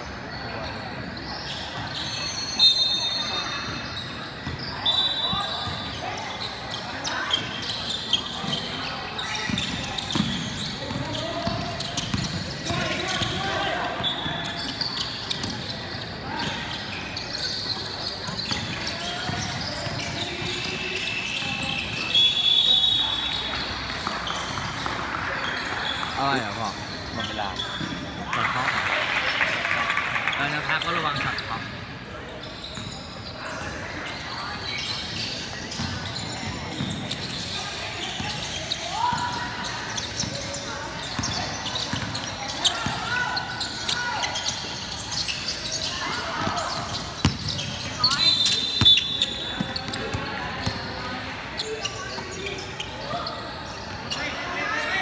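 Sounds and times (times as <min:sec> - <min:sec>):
people talking and calling out: 0:00.0 - 0:55.0.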